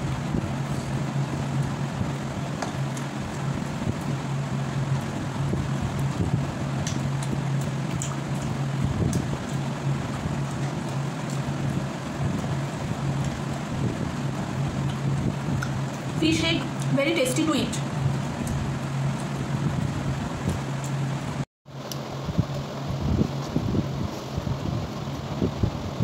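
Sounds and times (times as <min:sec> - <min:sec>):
low hum: 0:00.0 - 0:26.0.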